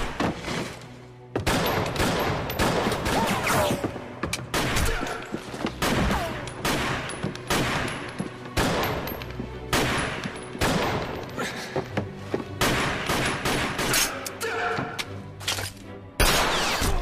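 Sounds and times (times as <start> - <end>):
echoing pistol shots: 5.8 - 8.0, 12.6 - 14.1.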